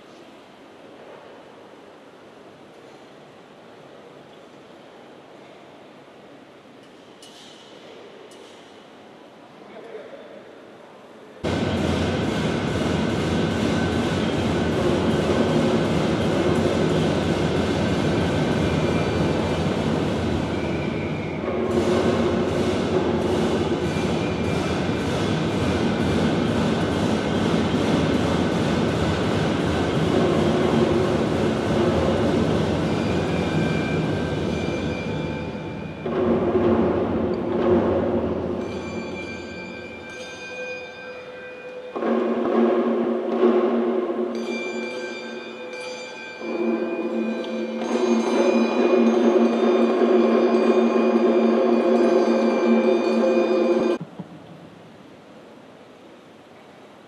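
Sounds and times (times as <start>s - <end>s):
drum roll: 11.4s - 40.6s, 41.9s - 44.6s, 46.4s - 54.8s
steady ringing tones: 11.4s - 42.6s, 44.2s - 54.0s.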